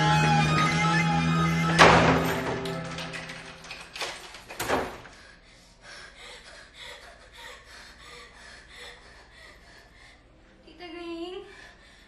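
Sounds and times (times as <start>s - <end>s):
guitar music: 0.0s - 3.2s
faint background ambience: 2.5s - 12.0s.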